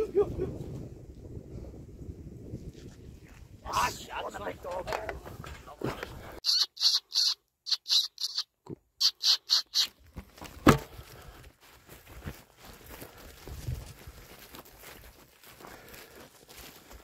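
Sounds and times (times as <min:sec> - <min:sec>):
rapid high-pitched squeaks: 0:06.4 - 0:09.9.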